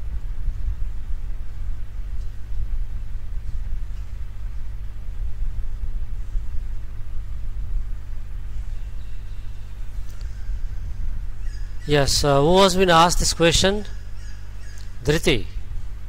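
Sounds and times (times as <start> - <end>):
low hum and rumble: 0.0 - 16.0.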